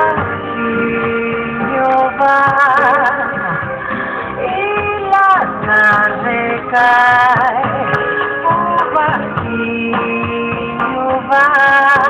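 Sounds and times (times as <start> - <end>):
musical accompaniment: 0.0 - 12.0
person singing with vibrato: 0.0 - 12.0.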